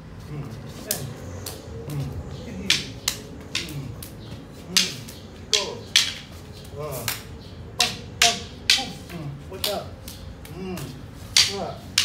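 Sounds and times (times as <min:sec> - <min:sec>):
wooden sticks clacking: 0:00.8 - 0:12.0
person grunting: 0:03.6 - 0:04.0.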